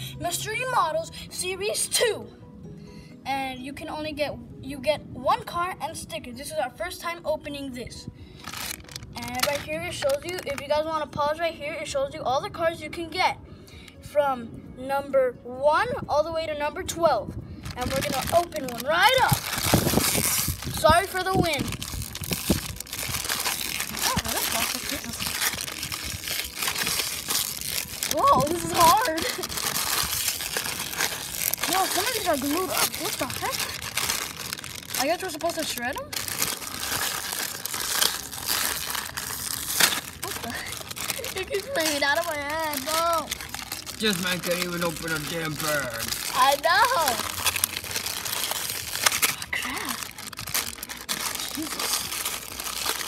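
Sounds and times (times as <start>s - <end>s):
foil packaging crinkling: 8.3s - 10.9s, 17.6s - 53.0s.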